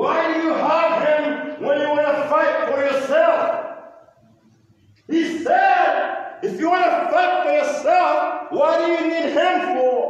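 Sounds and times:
loud voice holding notes: 0.0s - 4.0s, 5.1s - 10.0s.

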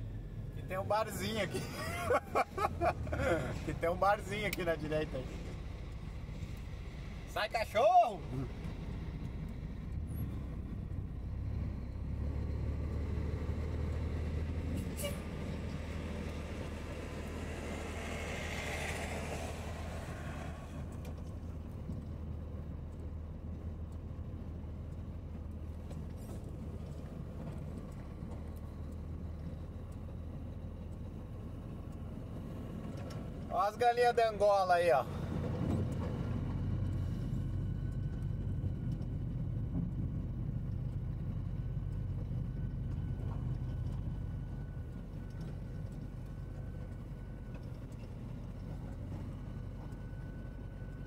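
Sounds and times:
bus passing by: 0.0s - 51.0s
road rattle noise: 0.0s - 51.0s
truck engine running: 0.0s - 51.0s.

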